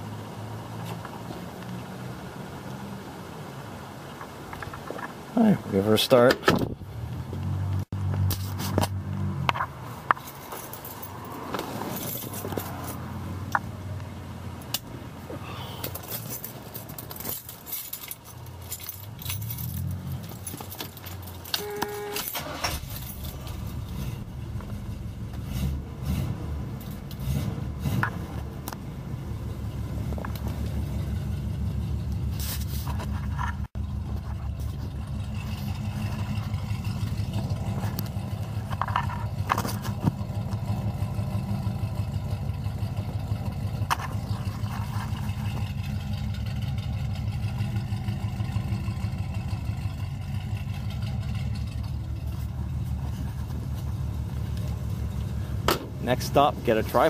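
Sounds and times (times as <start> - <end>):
car engine idling: 12.1 - 57.0
car engine revving: 18.8 - 57.0.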